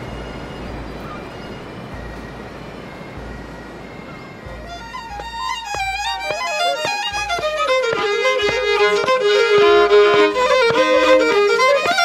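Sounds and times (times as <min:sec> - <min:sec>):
fiddle playing a tune: 0:00.0 - 0:12.0.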